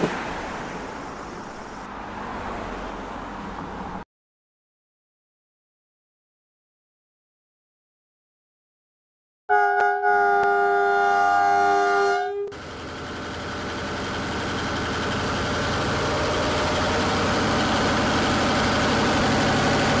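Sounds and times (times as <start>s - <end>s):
train passing rumble and rattle: 0.0s - 4.0s, 10.4s - 20.0s
train horn chord: 9.5s - 12.6s.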